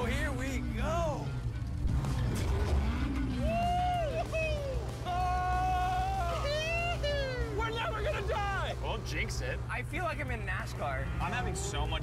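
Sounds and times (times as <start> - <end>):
sports car engine revving: 0.6 - 5.6, 7.4 - 12.0.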